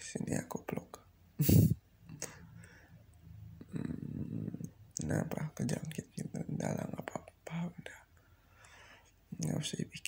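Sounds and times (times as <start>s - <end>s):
man humming: 3.6s - 4.7s
breathy whispering: 3.6s - 10.0s.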